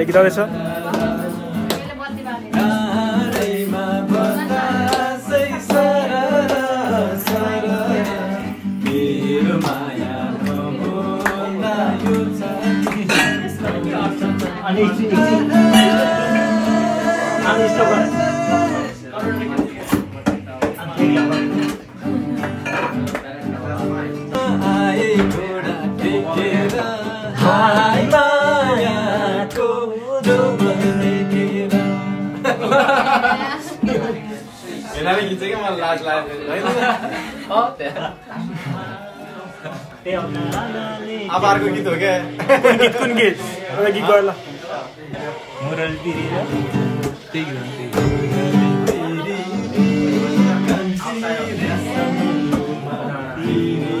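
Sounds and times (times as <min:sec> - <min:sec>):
acoustic guitar strumming: 0:00.0 - 0:34.3, 0:40.1 - 0:54.0
group of people singing: 0:00.4 - 0:19.9, 0:24.2 - 0:34.1, 0:42.4 - 0:54.0.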